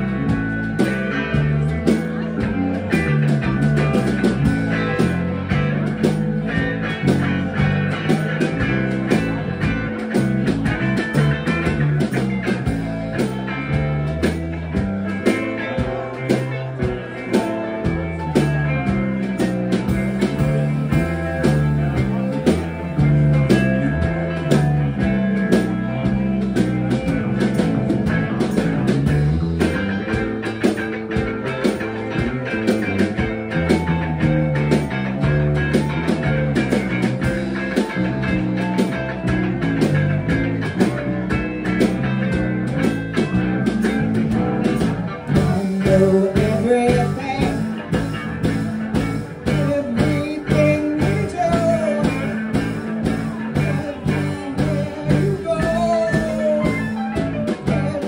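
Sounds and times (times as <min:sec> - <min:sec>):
drum beat: 0:00.0 - 0:58.0
live rock band playing: 0:00.0 - 0:58.0.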